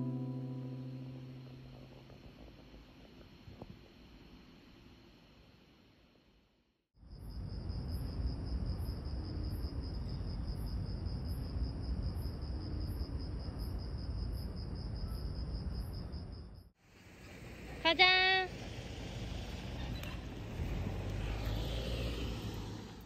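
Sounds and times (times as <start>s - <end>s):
insects chirping: 7.0s - 22.7s.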